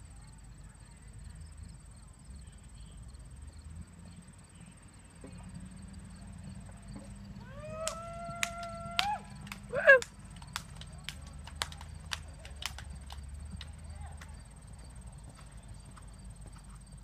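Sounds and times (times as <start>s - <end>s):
crickets chirping: 0.0s - 17.0s
low outdoor rumble: 0.0s - 17.0s.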